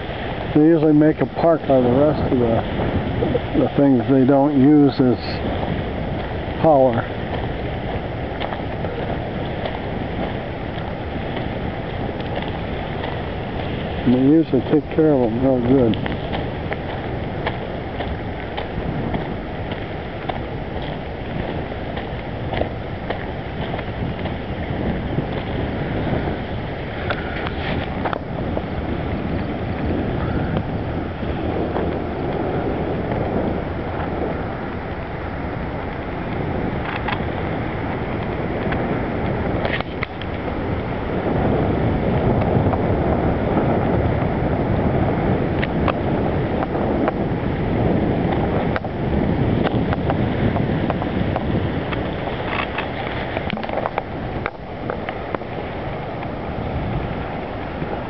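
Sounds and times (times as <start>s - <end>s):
river whitewater rushing: 0.0s - 41.6s, 49.8s - 58.0s
wind buffeting microphone: 0.0s - 58.0s.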